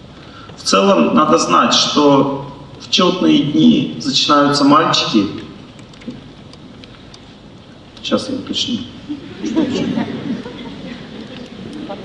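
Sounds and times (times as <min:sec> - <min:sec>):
room tone hiss: 0:00.0 - 0:12.0
faint clicks: 0:05.7 - 0:07.3.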